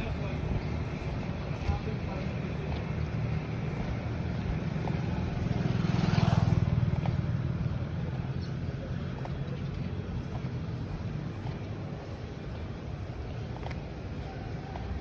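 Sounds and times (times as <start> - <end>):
road traffic rumbling: 0.0 - 15.0
vehicle passing by: 0.0 - 15.0.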